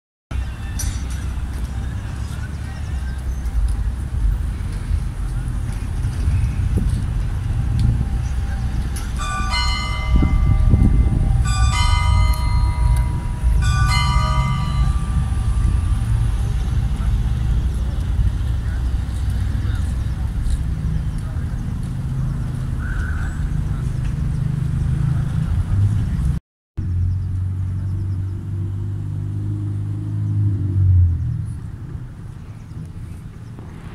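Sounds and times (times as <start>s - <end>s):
steady low rumble: 0.3s - 29.0s, 30.6s - 33.9s
church bell ringing: 8.9s - 17.8s.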